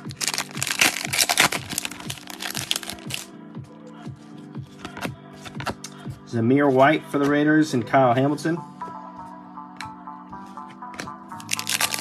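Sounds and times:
card pack wrapper crinkling and tearing: 0:00.0 - 0:03.3, 0:11.4 - 0:12.0
background music: 0:00.0 - 0:12.0.

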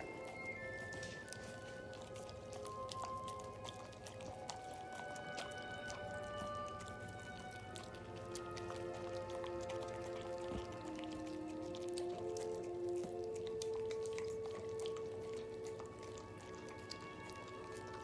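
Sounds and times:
animals chewing and licking: 0:00.0 - 0:18.0
background music with held notes: 0:00.0 - 0:18.0.

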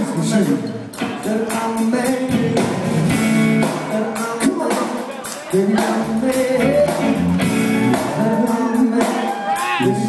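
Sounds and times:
drums: 0:00.0 - 0:10.0
electric guitar: 0:00.9 - 0:04.4, 0:05.7 - 0:10.0
person singing: 0:01.1 - 0:10.0.

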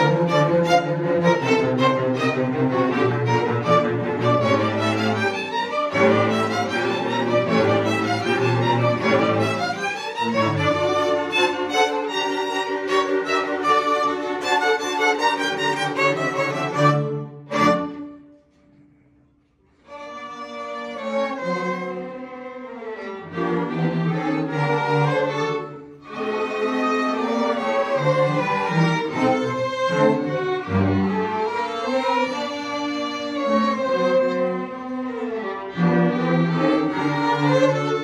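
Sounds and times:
string orchestra playing: 0:00.0 - 0:18.6, 0:19.6 - 0:38.0.

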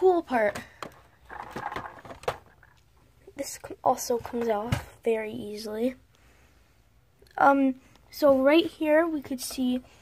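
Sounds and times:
plastic pieces clicking: 0:00.5 - 0:02.8.

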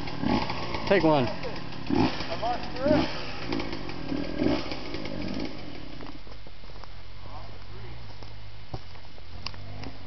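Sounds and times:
dirt bike engines revving: 0:00.0 - 0:06.5.

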